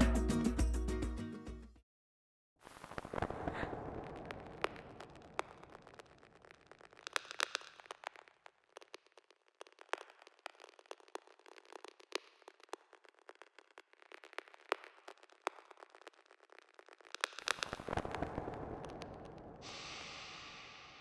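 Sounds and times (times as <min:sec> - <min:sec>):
record surface crackle: 0:02.6 - 0:19.6.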